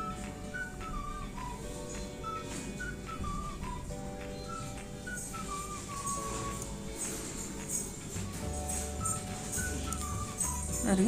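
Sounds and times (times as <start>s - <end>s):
high whistle-like melody: 0.0s - 11.0s.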